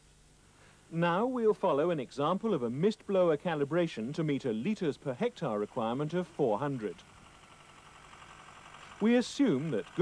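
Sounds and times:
faint tractor running: 1.2 - 10.0.

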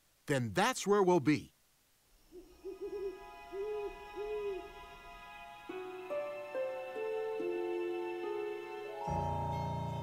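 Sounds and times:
owl hooting: 2.2 - 4.9
faint held music chord: 2.2 - 10.0.

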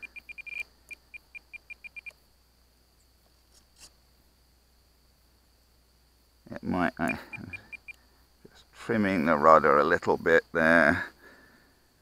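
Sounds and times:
longer beep tone: 0.0 - 2.1, 7.1 - 8.0
short high beeps: 0.0 - 2.1, 7.1 - 8.0.

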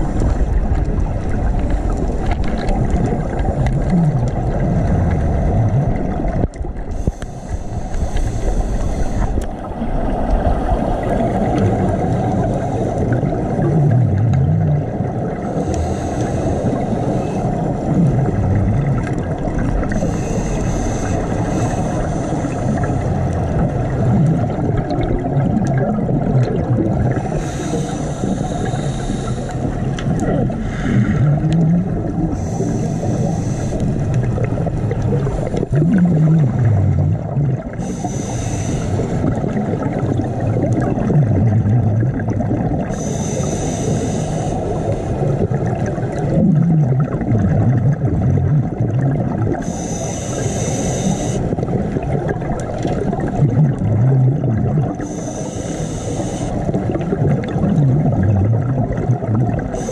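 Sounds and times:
bubbling hiss: 0.0 - 59.9
underwater rumble of moving water: 0.0 - 59.9.

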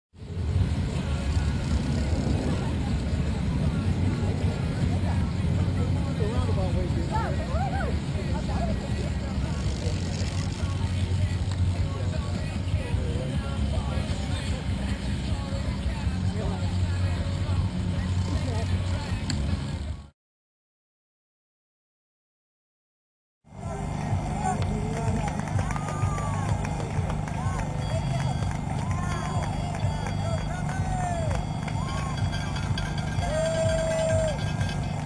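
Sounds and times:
faint distant voices: 0.2 - 20.1.

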